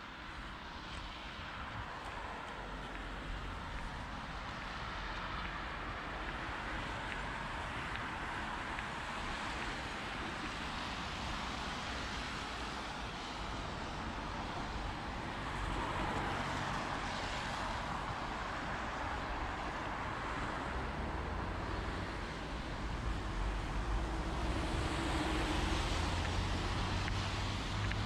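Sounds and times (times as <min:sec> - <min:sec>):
low traffic rumble: 0:00.0 - 0:28.0
tyres hissing on wet road: 0:00.1 - 0:28.0.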